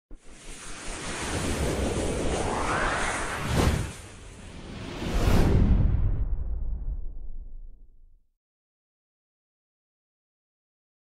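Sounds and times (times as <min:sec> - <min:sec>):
rushing whoosh: 0:00.2 - 0:07.5.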